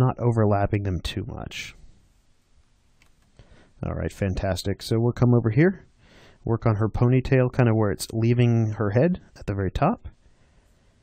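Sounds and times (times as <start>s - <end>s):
man speaking: 0.0s - 1.9s, 3.8s - 10.2s
soft clicks: 2.6s - 3.4s.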